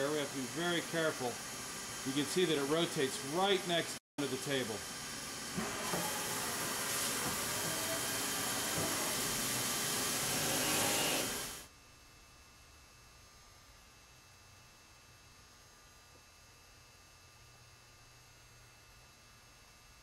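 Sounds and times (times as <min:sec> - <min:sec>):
milling machine hissing: 0:00.0 - 0:11.7.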